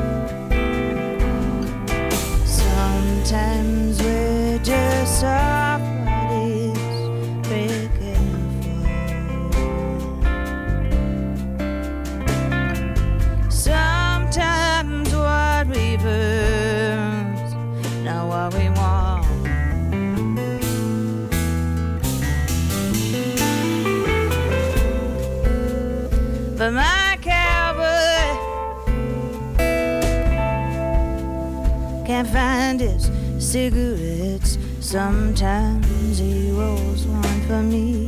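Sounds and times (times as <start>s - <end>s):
acoustic and electric guitars: 0.0s - 38.0s
woman singing: 2.3s - 10.8s, 13.4s - 19.8s, 24.7s - 29.3s, 31.6s - 38.0s.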